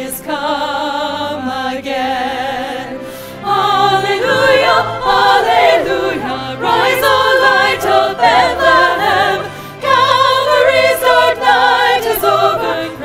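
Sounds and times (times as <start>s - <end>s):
women's chorus singing a hymn: 0.0s - 13.0s.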